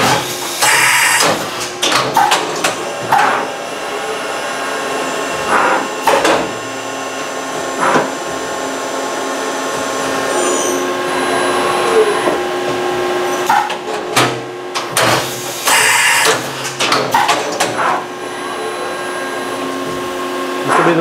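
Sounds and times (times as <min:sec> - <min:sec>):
machine drives humming and whining: 0:00.0 - 0:21.0.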